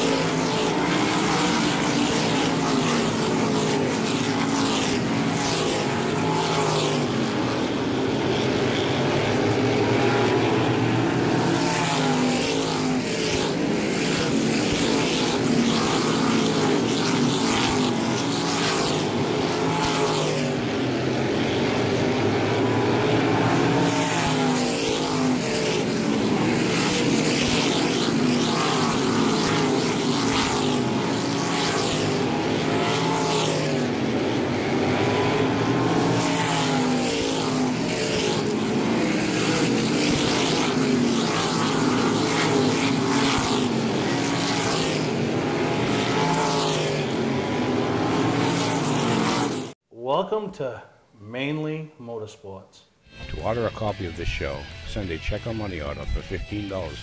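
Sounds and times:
racing car engines: 0:00.0 - 0:49.8, 0:53.1 - 0:57.0.

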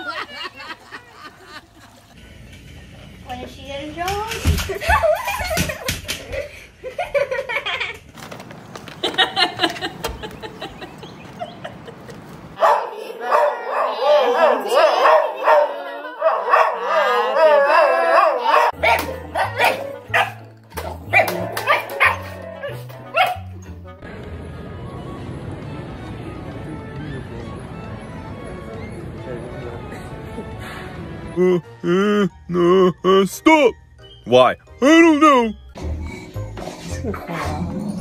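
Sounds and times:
dog howling: 0:12.6 - 0:19.8
dog barking: 0:12.6 - 0:20.4, 0:21.0 - 0:23.5.

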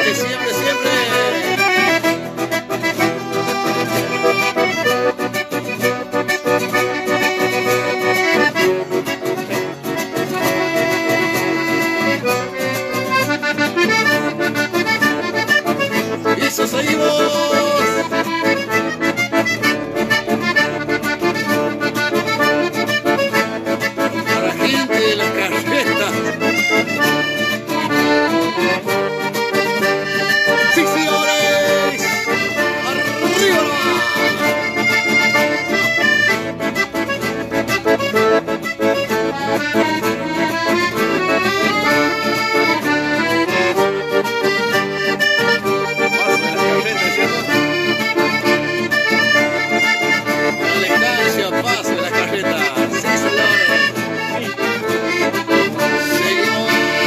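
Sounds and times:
accordion: 0:00.0 - 0:57.0
acoustic guitar: 0:00.0 - 0:57.0.

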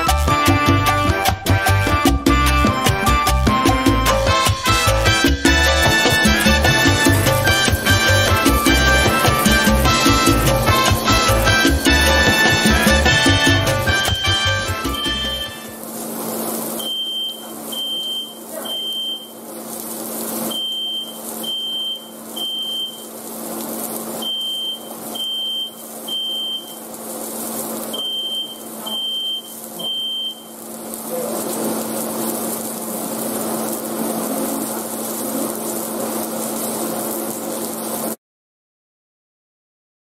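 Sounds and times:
meat sizzling on grill pan: 0:00.0 - 0:38.2
smoke alarm beeping: 0:03.8 - 0:15.9, 0:16.6 - 0:19.4, 0:20.3 - 0:23.3, 0:24.0 - 0:26.9, 0:27.8 - 0:30.7.

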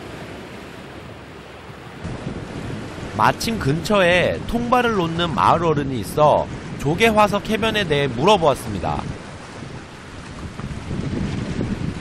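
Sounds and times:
wind buffeting microphone: 0:01.7 - 0:12.0.

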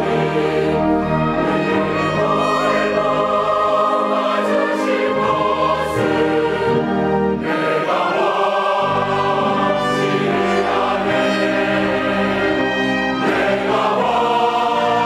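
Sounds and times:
mixed choir singing a hymn: 0:00.0 - 0:15.0
orchestra with strings: 0:00.0 - 0:15.0.

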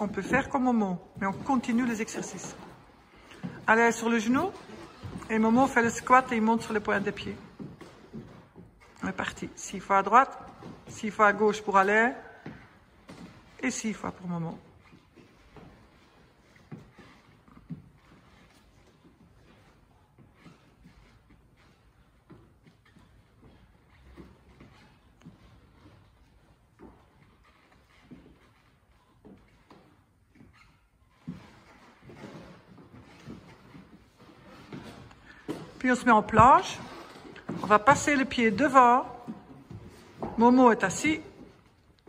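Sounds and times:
trainers thudding on wooden floor: 0:00.0 - 0:14.4, 0:31.2 - 0:41.6.

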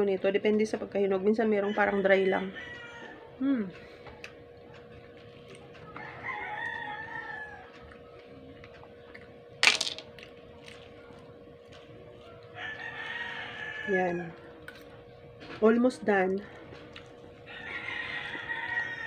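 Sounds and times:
rooster crowing: 0:01.6 - 0:03.3, 0:06.0 - 0:07.8, 0:12.4 - 0:14.4, 0:17.5 - 0:19.0.

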